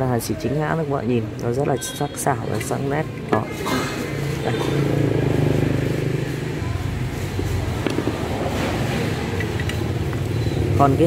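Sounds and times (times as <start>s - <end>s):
vehicle engine humming: 2.4s - 11.0s.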